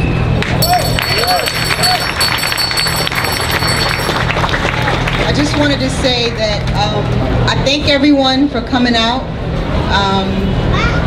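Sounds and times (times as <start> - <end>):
crowd clapping: 0.4 - 6.8.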